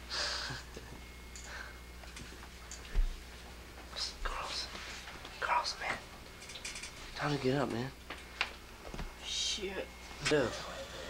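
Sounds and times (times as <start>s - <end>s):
person whispering: 3.9s - 4.8s, 5.4s - 6.0s.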